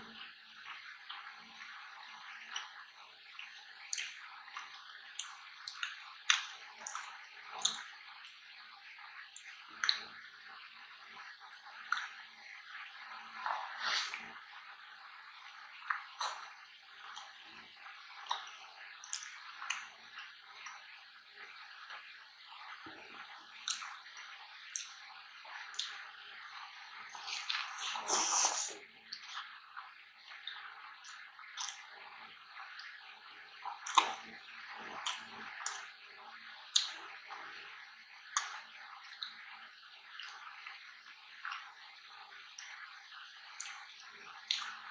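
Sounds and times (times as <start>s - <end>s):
wet chewing: 27.1s - 29.4s.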